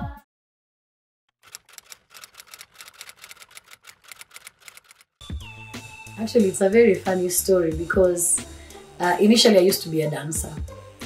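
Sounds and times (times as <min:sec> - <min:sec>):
typewriter keys clicking: 0:01.4 - 0:05.1.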